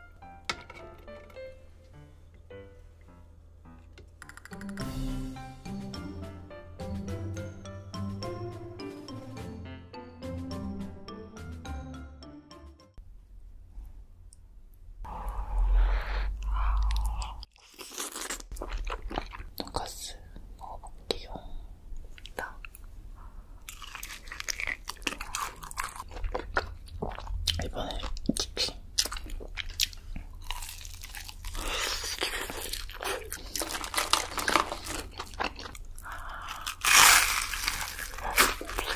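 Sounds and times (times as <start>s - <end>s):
crunchy bites and chewing: 16.9s - 19.6s, 23.6s - 27.6s, 29.0s - 38.9s
wet mouth noises: 24.2s - 30.4s.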